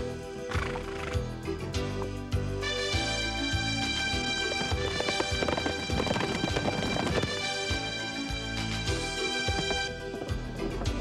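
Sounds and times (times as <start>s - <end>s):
galloping horse hooves: 0.0s - 2.2s, 2.8s - 11.0s
background music: 0.0s - 11.0s.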